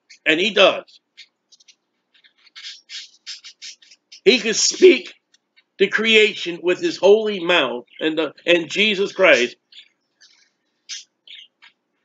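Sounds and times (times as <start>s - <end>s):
bird calling: 0.8s - 5.0s, 9.1s - 11.6s.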